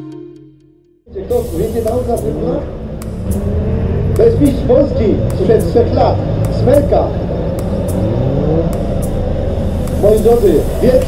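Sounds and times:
motorcycle engine revving: 1.2 - 11.0.

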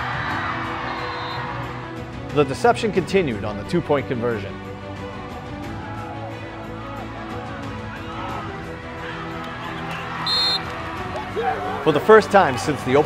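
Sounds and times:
background music: 0.0 - 13.0
referee's whistle blast: 1.1 - 1.4, 10.2 - 10.7.

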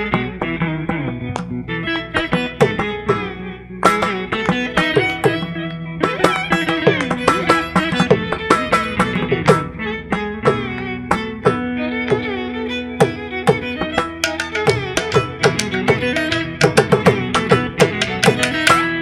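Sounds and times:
electric guitar melody: 0.0 - 19.0
mridangam drum strokes: 0.0 - 19.0.

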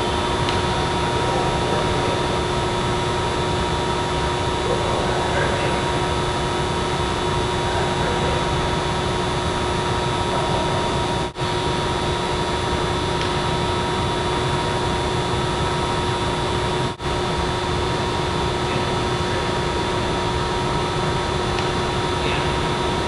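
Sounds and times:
ventilation blower rushing hum: 0.0 - 23.0.

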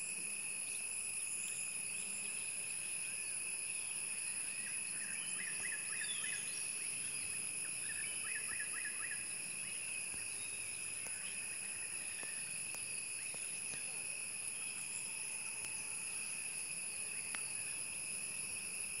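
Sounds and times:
shrill chorus of insects: 0.0 - 19.0.

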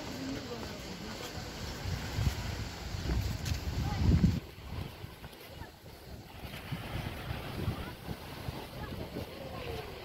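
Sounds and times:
wind buffeting microphone: 0.9 - 10.0.

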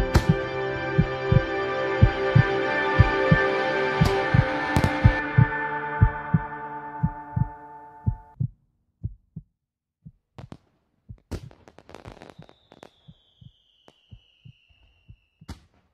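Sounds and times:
heartbeat thumps: 0.0 - 3.4, 4.0 - 11.6
soft held music chords: 0.0 - 8.4.

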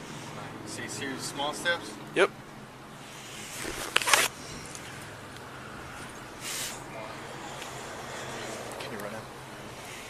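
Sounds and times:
faint outdoor background: 0.0 - 10.0
clothing rustling on microphone: 3.5 - 4.3.

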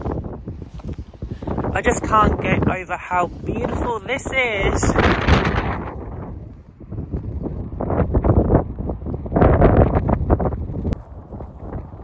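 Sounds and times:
footsteps crunching on snow: 0.0 - 5.2
wind buffeting microphone: 0.0 - 12.0.

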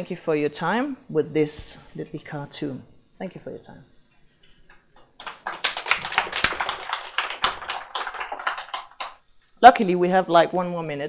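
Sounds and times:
audience applauding: 5.1 - 9.2.

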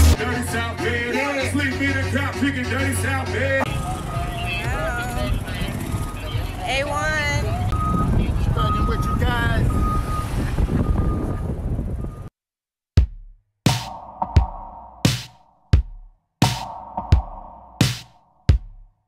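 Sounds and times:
concert music: 0.0 - 5.2
low car rumble: 1.6 - 12.3
people talking in car: 3.5 - 9.8.

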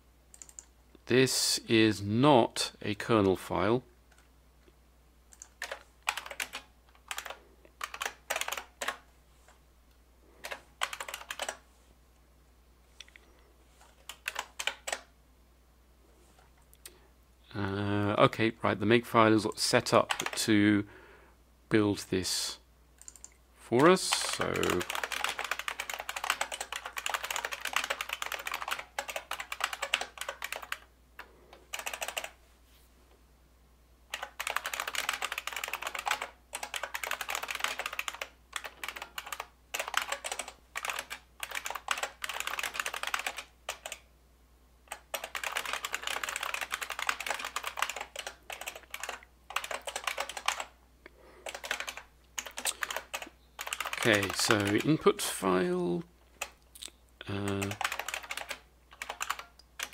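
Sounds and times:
rapid typing on keyboard: 0.3 - 0.7, 5.3 - 9.0, 10.4 - 11.6, 13.8 - 15.1, 19.9 - 20.4, 23.0 - 32.4, 34.1 - 44.1, 44.9 - 50.8, 51.4 - 55.1, 56.3 - 56.6, 57.3 - 59.9.

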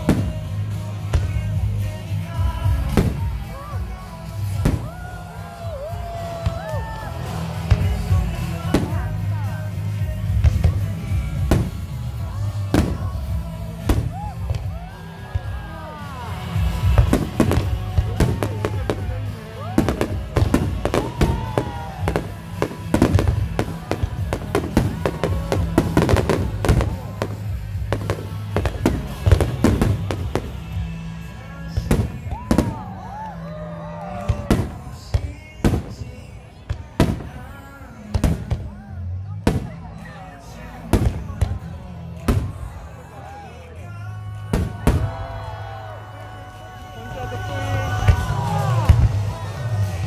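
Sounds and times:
fireworks bursting and crackling: 0.0 - 43.0, 44.3 - 50.0
crowd voices: 0.0 - 50.0
music: 0.0 - 50.0.

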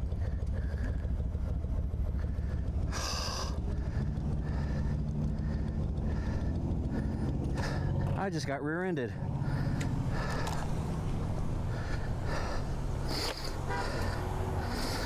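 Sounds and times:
motorcycle engine idling: 0.0 - 15.0
second vehicle engine: 0.0 - 15.0.

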